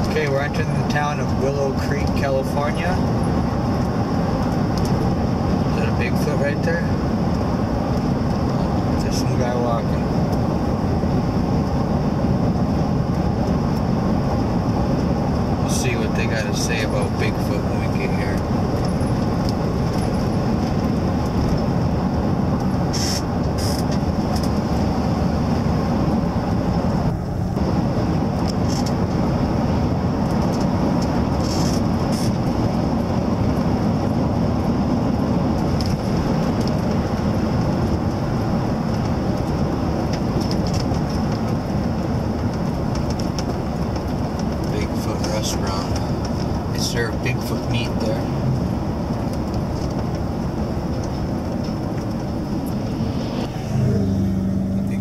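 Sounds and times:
road and engine noise in van: 0.0 - 55.0.

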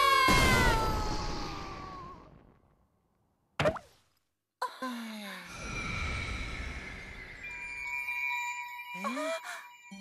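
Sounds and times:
steady ringing high tones: 5.5 - 10.0.

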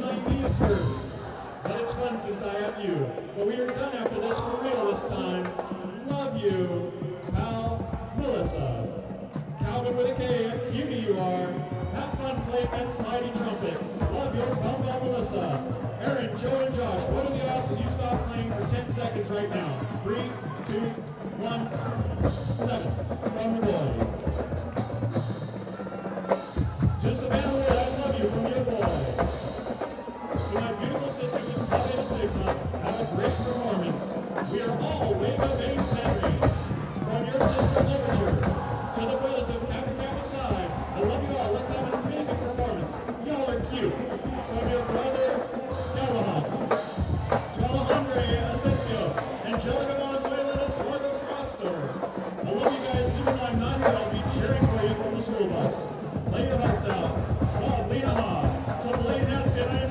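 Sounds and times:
drumline and bass drums: 0.0 - 59.9.

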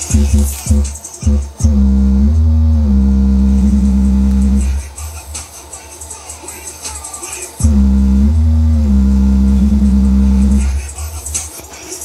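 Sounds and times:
deep bass note: 0.0 - 5.0, 7.6 - 11.2
bass-heavy music from speaker: 0.0 - 12.0.

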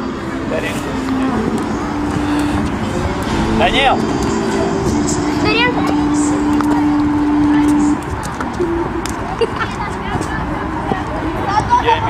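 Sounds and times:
low electronic tone: 3.2 - 5.2
open-air football pitch ambience: 5.5 - 12.0.

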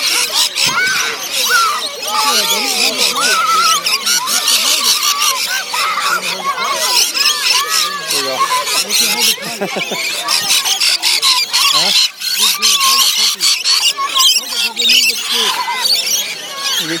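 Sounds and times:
parrots screeching and chattering: 0.0 - 17.0.

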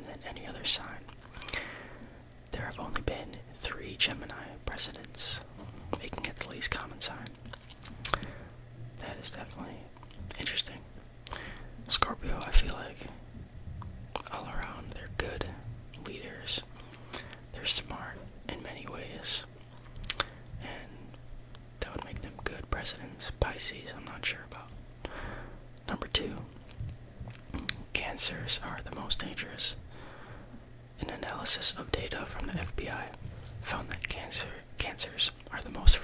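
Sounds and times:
close whispering: 0.0 - 1.7, 2.5 - 7.4, 8.1 - 13.4, 14.1 - 19.5, 20.3 - 21.2, 21.8 - 24.8, 25.8 - 26.6, 27.6 - 29.8, 31.0 - 36.0.

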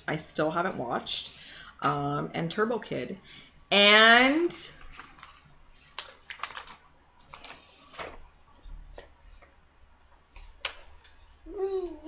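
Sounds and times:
paper and card rustling: 4.8 - 8.3.

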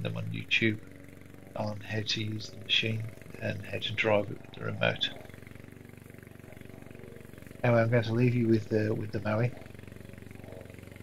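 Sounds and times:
lawn mower engine cutting grass: 0.0 - 11.0.

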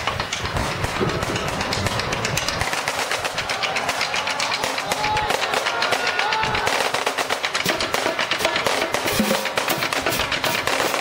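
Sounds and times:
bass drums: 0.0 - 11.0
marching snare drums: 0.0 - 11.0.

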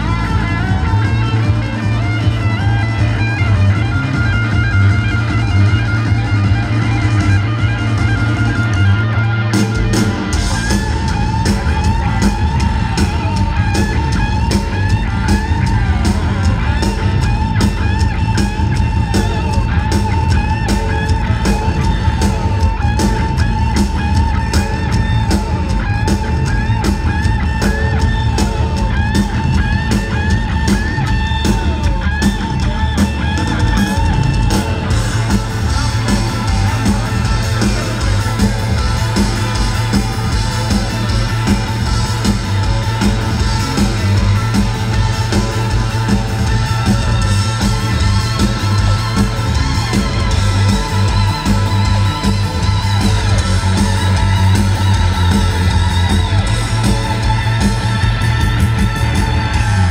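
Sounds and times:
rock band playing: 0.0 - 59.9.

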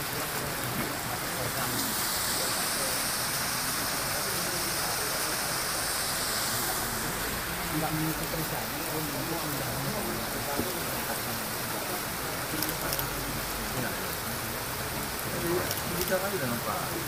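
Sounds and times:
flowing stream and waterfall: 0.0 - 17.0
indistinct crowd voices: 0.0 - 17.0.

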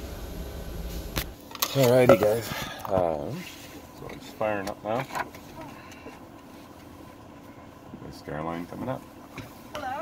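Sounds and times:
cockpit systems humming: 0.0 - 1.5
faint constant tones: 0.0 - 10.0.

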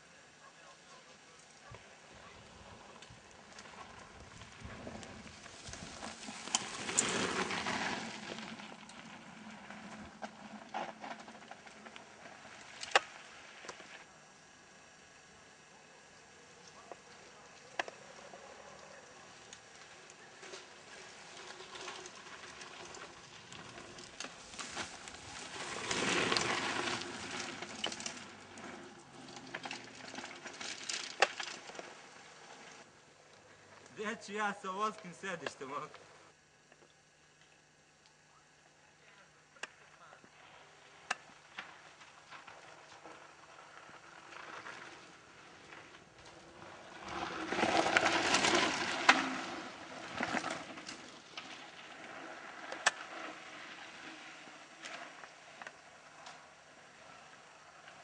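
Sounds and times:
tyres on loose ground: 0.0 - 15.0, 16.0 - 36.9, 38.5 - 58.0
mountain bike rattling: 2.2 - 14.0, 17.6 - 32.9, 40.9 - 58.0.

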